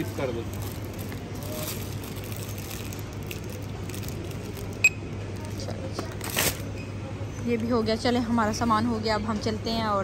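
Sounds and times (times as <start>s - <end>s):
supermarket low hum: 0.0s - 10.0s.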